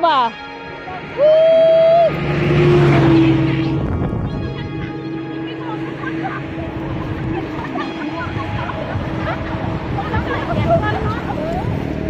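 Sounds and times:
vehicle passing by: 0.6 - 12.0.

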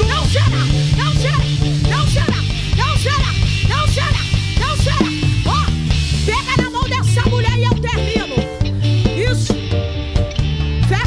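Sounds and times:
vocal cries: 0.0 - 9.0
drum hits: 0.0 - 10.6
gospel band held low note: 0.0 - 11.0.

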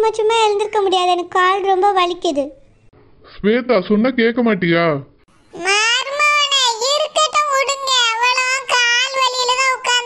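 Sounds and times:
high-pitched cartoon voice singing: 5.6 - 10.0.

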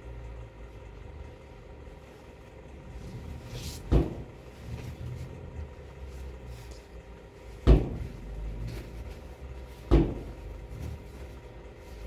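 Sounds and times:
jacket thudding on clothes: 7.5 - 11.4.

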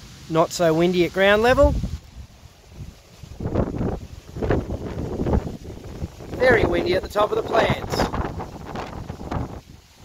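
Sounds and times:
wind buffeting microphone: 1.3 - 10.0.

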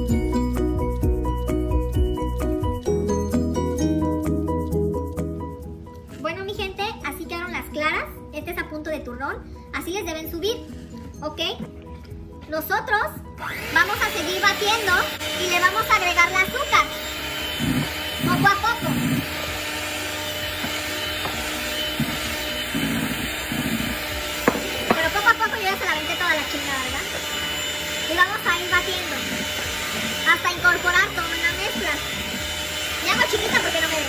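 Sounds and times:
electric hand mixer whipping: 13.4 - 34.0.

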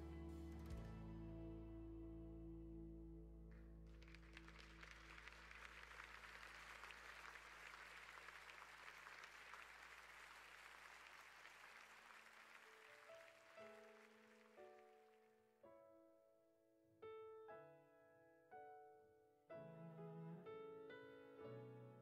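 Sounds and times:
held low chord: 0.0 - 3.8
soft piano notes: 0.0 - 4.0
faint applause: 3.5 - 15.2.

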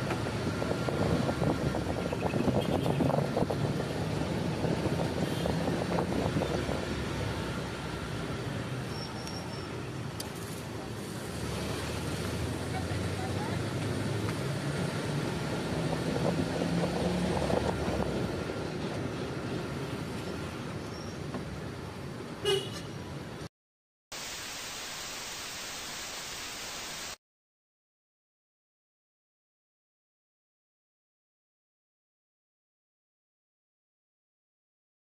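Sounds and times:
road and vehicle noise: 0.0 - 23.5
car horn toot: 22.4 - 22.9
flat even hiss: 24.1 - 27.2.

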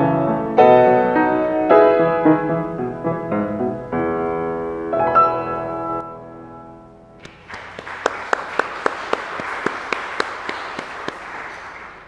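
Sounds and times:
congregation applauding: 7.2 - 12.0
sharp claps: 7.2 - 12.0.

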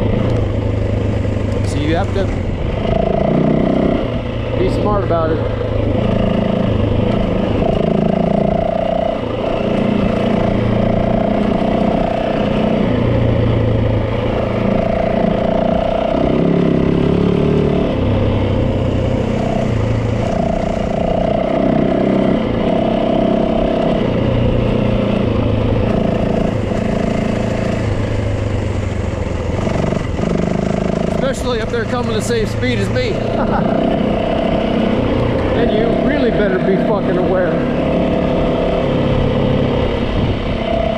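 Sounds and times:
dirt bike engine revving: 0.0 - 40.9.

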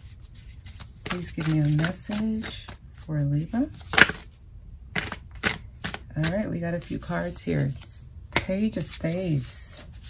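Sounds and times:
cards being shuffled: 0.0 - 4.3, 4.9 - 7.9.

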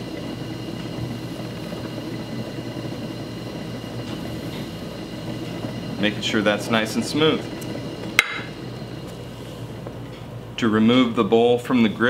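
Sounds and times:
potter's wheel humming: 0.0 - 12.0.

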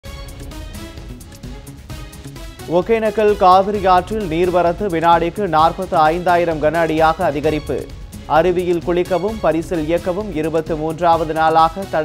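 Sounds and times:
news theme music: 0.0 - 12.0.

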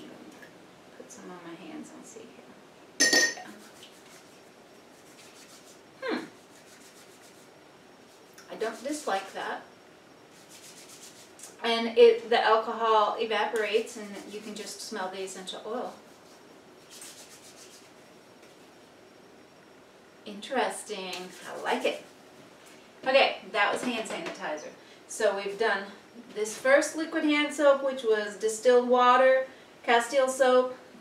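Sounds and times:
hands rubbing together: 3.5 - 7.5, 8.1 - 9.4, 10.3 - 11.6, 15.8 - 18.7, 21.1 - 22.2
woman humming hmm: 6.0 - 6.4.

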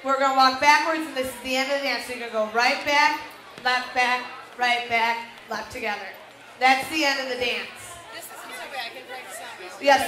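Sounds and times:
murmur of people talking: 0.0 - 10.0
woman speaking: 0.0 - 10.0.

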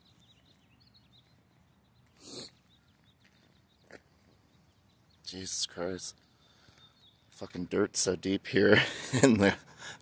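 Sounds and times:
faint bird chirps: 0.0 - 7.6.

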